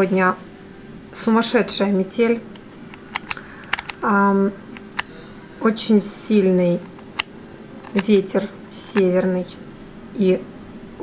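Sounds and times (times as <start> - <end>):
sharp light clicks: 2.5 - 4.0.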